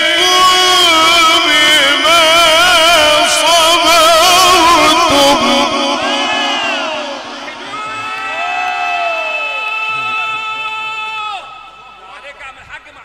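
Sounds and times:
man chanting with vibrato: 0.0s - 7.7s.

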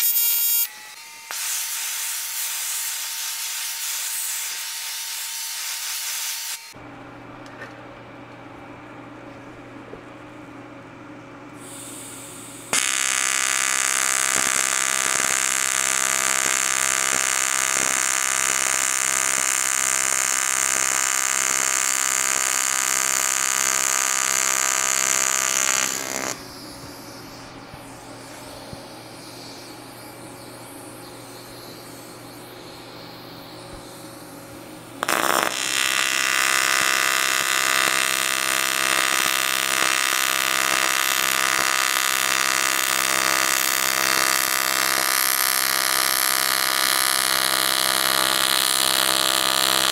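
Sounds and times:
welding arc buzzing: 0.0s - 6.8s, 11.6s - 49.9s.

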